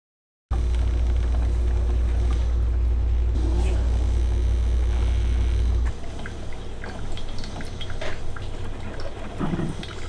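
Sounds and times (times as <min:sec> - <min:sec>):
coffee machine humming: 0:00.6 - 0:10.0.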